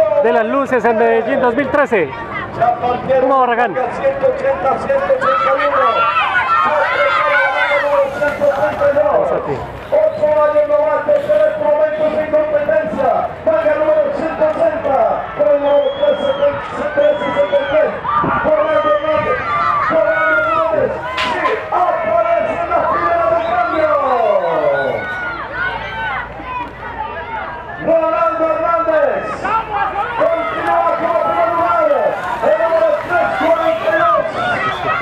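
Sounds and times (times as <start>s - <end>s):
spectators shouting and cheering: 0.0s - 35.0s.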